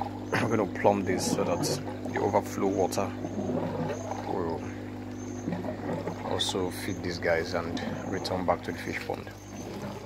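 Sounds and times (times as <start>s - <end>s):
electric water pump humming: 0.0s - 10.0s
water flowing: 0.0s - 10.0s.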